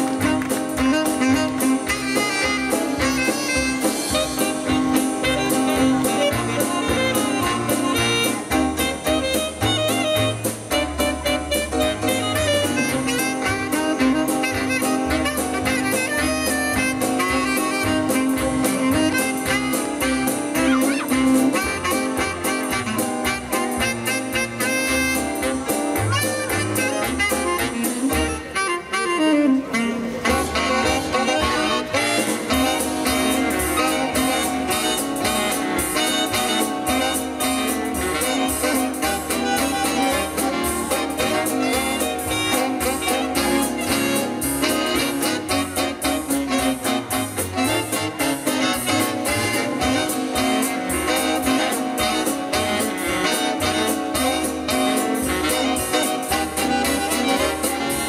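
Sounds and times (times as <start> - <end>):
walking bass line: 0.0 - 28.6, 30.3 - 58.0
big band swing jazz: 0.0 - 58.0
drums: 0.0 - 58.0
horns playing falling run: 0.0 - 58.0.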